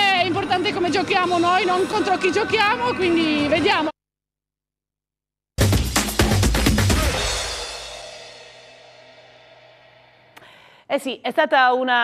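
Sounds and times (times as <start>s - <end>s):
drums and cymbals music sting: 5.6s - 10.1s
cymbal crash ringing out: 6.8s - 10.3s.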